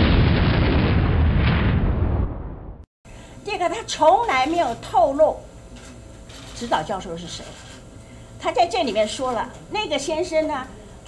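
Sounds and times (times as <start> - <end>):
explosion-like boom: 0.0 - 2.9.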